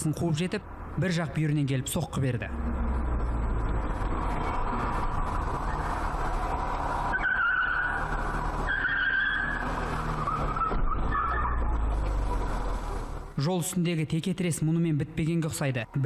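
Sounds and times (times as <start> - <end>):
cars driving on street: 0.0 - 16.0
tyres squealing: 7.1 - 12.5.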